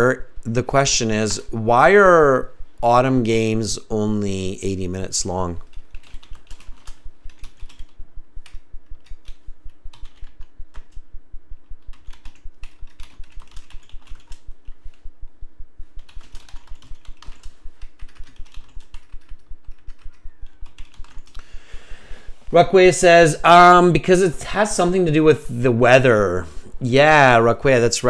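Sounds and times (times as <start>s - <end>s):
computer keyboard typing: 5.5s - 11.0s, 11.8s - 15.0s, 16.0s - 21.4s.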